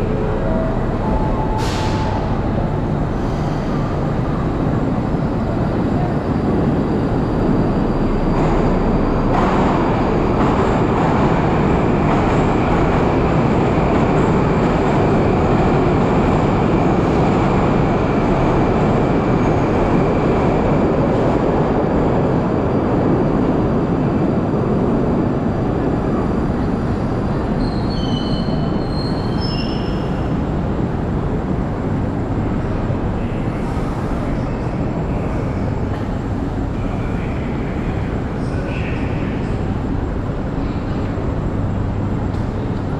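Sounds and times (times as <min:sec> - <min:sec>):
train wheels and motors rumbling: 0:00.0 - 0:42.9.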